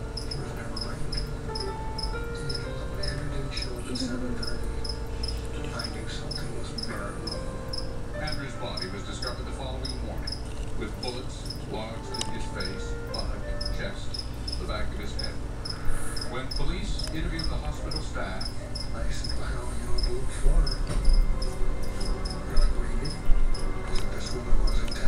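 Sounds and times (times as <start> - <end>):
cricket chirping: 0.0 - 25.0
faint background voices: 0.0 - 25.0.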